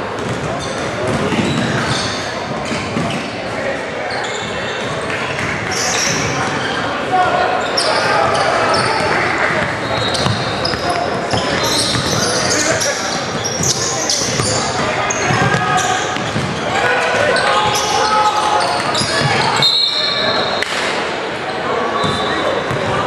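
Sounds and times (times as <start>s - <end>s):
sneakers squeaking on court: 0.1s - 3.5s, 4.1s - 20.6s, 22.0s - 23.0s
people calling out: 5.7s - 20.6s.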